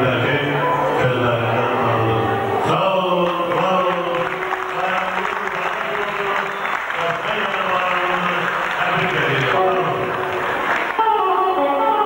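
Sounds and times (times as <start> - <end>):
audience applauding: 3.2 - 11.3
man speaking over pa: 4.0 - 10.2.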